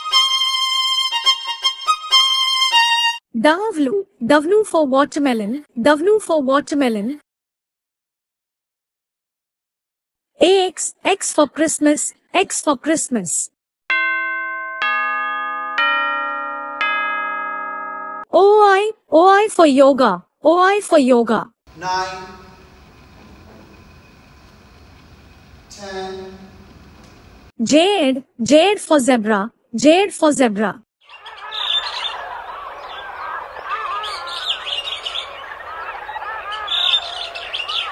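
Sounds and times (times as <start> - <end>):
bell-like chime notes: 13.9 - 18.3
many small birds chirping: 31.0 - 37.9.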